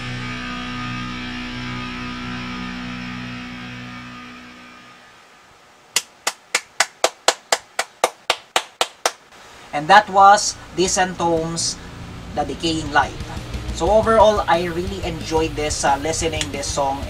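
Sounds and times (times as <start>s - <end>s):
death metal held chord: 0.0s - 5.0s, 10.5s - 17.0s
person clapping: 6.0s - 9.3s, 16.4s - 16.6s.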